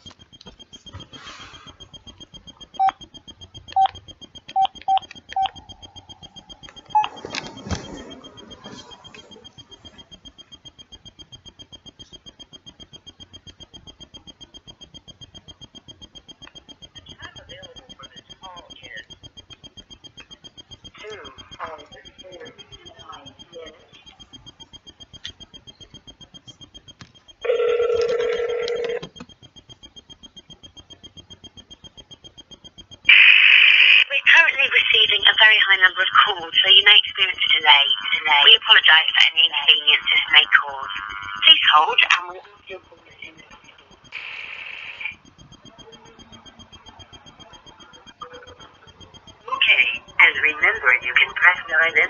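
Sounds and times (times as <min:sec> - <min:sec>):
phone keypad beeps: 0:00.0 - 0:52.0
phone ringback tone: 0:27.4 - 0:29.2.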